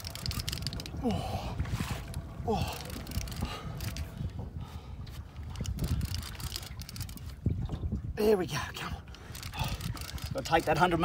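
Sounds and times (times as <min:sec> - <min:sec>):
small clicks: 0:00.0 - 0:01.0, 0:02.8 - 0:04.1, 0:05.6 - 0:07.3, 0:09.1 - 0:11.0
wind rumble on microphone: 0:00.0 - 0:11.0.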